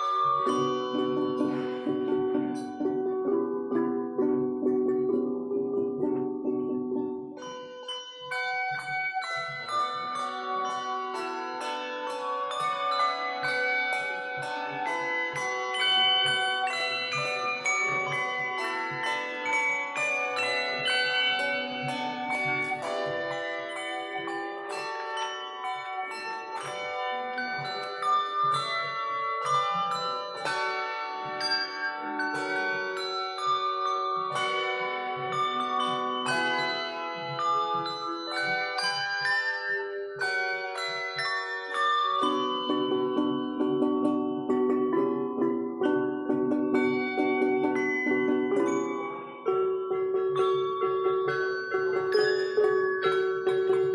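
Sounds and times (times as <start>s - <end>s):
handbell choir playing: 0.0s - 53.9s.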